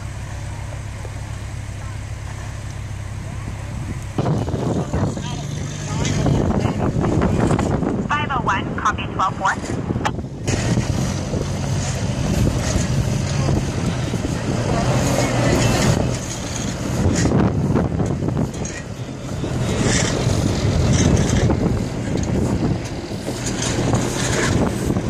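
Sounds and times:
heavy vehicle engine idling: 0.0 - 25.0
wind noise on microphone: 3.8 - 25.0.

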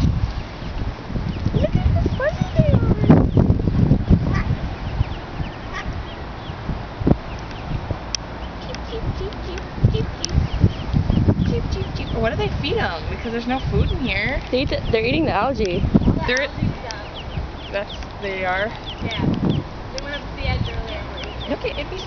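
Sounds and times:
ducklings peeping: 0.0 - 22.0.

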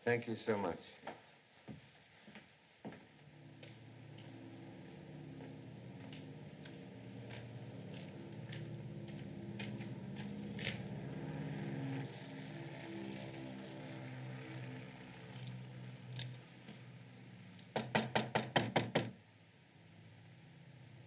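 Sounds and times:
footsteps on cobblestones: 1.0 - 11.2.

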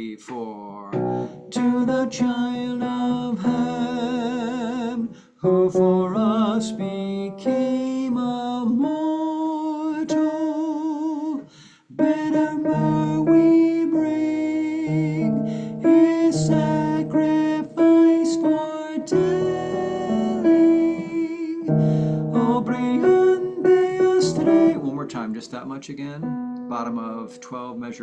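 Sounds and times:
piano keyboard playing held notes: 0.9 - 8.1, 10.1 - 11.2, 12.0 - 28.0.

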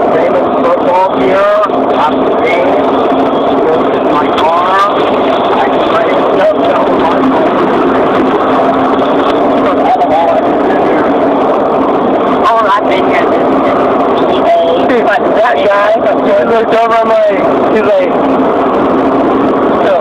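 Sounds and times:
overlapping voices chattering: 0.0 - 20.0
vehicle hum and road noise: 0.0 - 20.0.

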